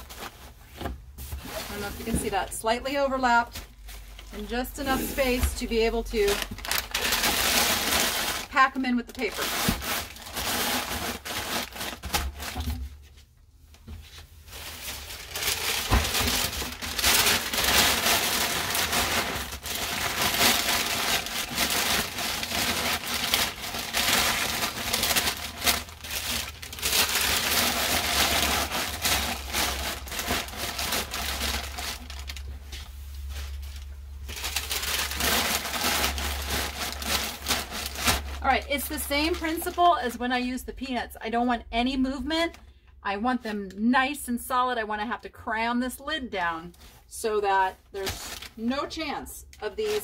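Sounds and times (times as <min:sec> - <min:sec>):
packing paper crumpling: 0:00.0 - 0:00.6, 0:03.5 - 0:12.7, 0:14.4 - 0:39.9, 0:48.0 - 0:48.6, 0:49.7 - 0:50.0.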